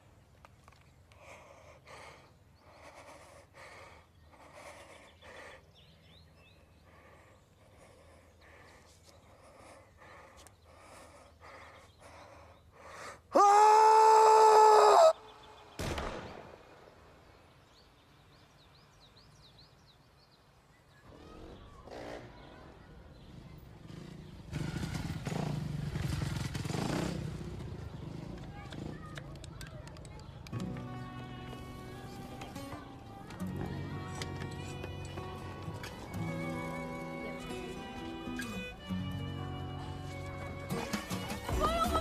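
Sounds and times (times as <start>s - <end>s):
man screaming loudly: 13.4s - 15.2s.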